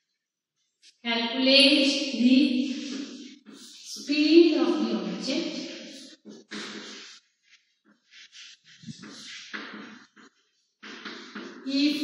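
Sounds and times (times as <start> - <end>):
chalk scraping on a blackboard: 6.0 - 11.8.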